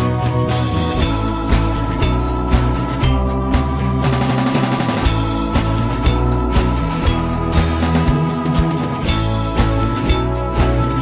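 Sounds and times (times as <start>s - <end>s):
electric guitar: 0.0s - 11.0s
steady drum beat: 0.0s - 11.0s
sustained low notes: 0.0s - 11.0s.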